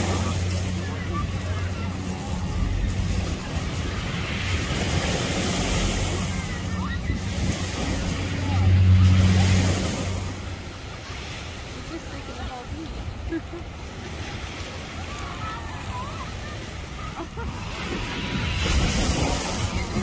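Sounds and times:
low steady hum: 0.0 - 11.0
faint background voices: 0.0 - 20.0
waves washing ashore: 0.0 - 20.0.

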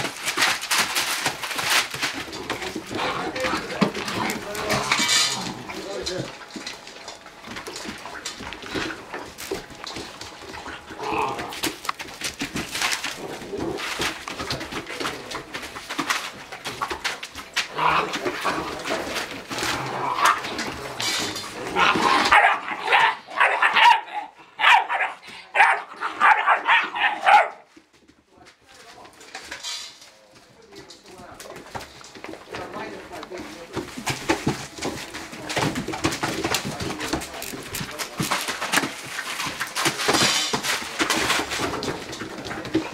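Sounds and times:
puppies vocalizing: 0.0 - 27.7
paws scratching on newspaper: 0.0 - 29.4, 30.2 - 42.9.

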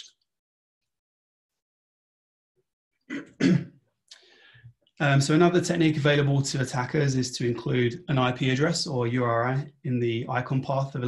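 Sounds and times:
man clearing his throat: 3.1 - 3.8
soft breath: 4.2 - 4.8.

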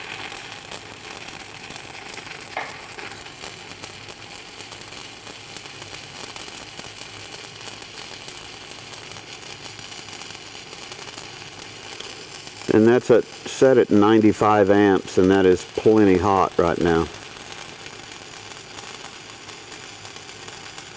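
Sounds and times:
welding arc crackling sizzle: 0.0 - 20.9.

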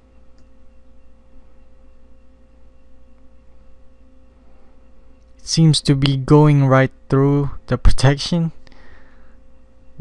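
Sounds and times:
faint steady tone: 0.0 - 10.0
low electrical hum: 0.0 - 10.0.

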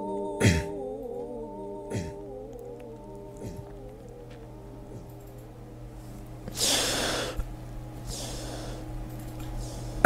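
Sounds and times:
man reciting in wavering tone: 0.0 - 5.7.

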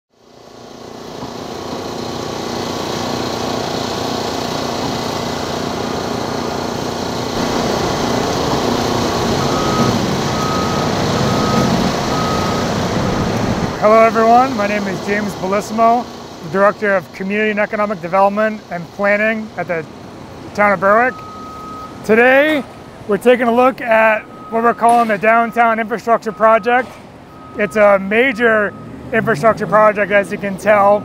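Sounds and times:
heavy vehicle engine running: 0.1 - 31.0
back-up alarm beeping: 8.2 - 12.8, 20.8 - 22.6, 23.6 - 31.0.

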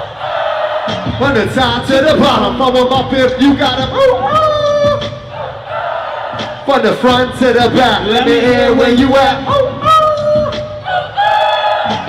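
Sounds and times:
hip-hop bass and drums: 0.0 - 5.7, 6.3 - 12.0.

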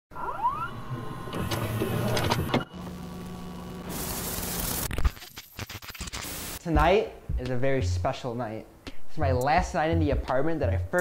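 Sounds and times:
electronic rising sweeps: 0.1 - 2.2
whirring and clicks: 0.2 - 6.3
stuttering digital glitch noise: 3.7 - 6.6.

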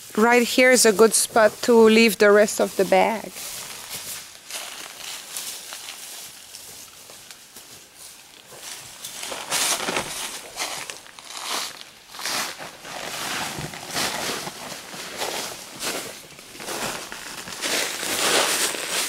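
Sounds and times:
rustling in dry leaves: 0.0 - 19.0.

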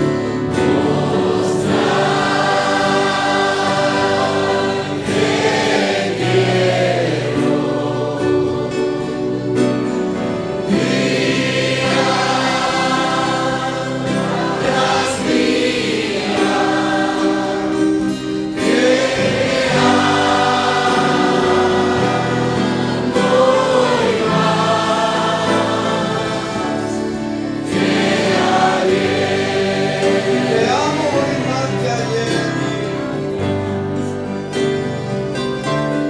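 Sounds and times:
congregation singing a hymn: 0.0 - 36.0.

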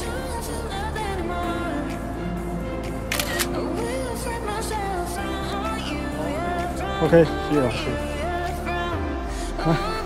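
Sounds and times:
pop music with sung vocal: 0.0 - 10.0
camera shutter clicks: 3.1 - 3.6.

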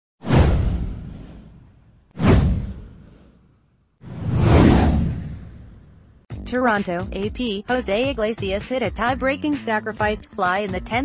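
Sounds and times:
whoosh sound effect: 0.2 - 6.2
deep low rumble: 4.1 - 6.2.

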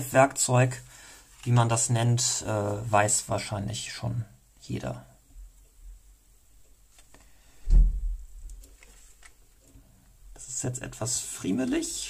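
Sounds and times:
dull deep thump: 7.6 - 8.3.

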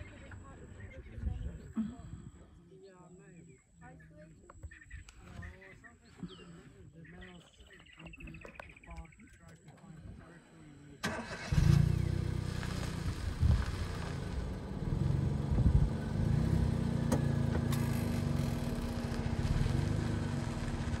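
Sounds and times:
vehicle engine idling: 10.9 - 21.0.

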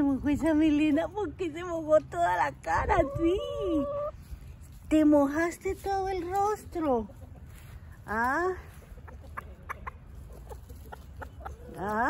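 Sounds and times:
chickens clucking: 1.6 - 4.8, 5.6 - 12.0.

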